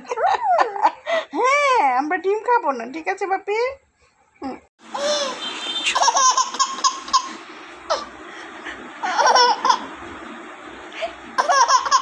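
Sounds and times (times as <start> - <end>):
baby laughing: 4.9 - 8.1, 9.0 - 10.0, 11.0 - 12.0.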